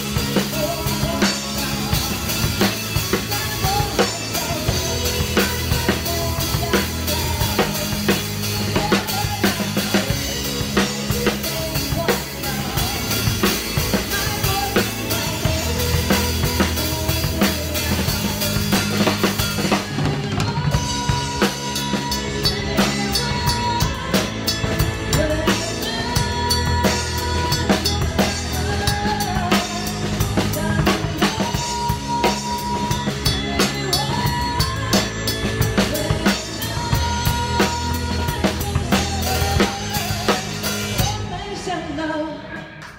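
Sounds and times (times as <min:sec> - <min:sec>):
drum kit beat: 0:00.0 - 0:41.7
bass: 0:00.0 - 0:42.9.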